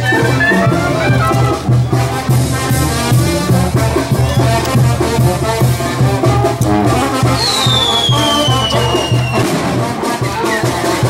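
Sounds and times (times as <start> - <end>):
brass band playing: 0.0 - 11.0
tuba bass beat: 0.0 - 11.0
high whistle sliding downward: 7.4 - 9.4.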